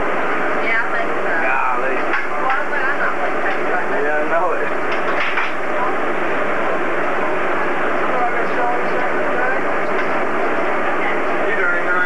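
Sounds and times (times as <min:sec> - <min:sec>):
chatter of voices: 0:00.6 - 0:12.0.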